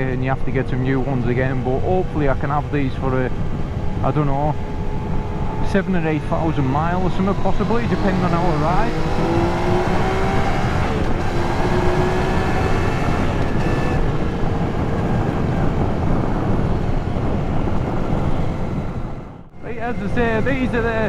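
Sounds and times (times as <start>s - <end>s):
road rumble: 0.0s - 21.0s
wind noise: 0.0s - 21.0s.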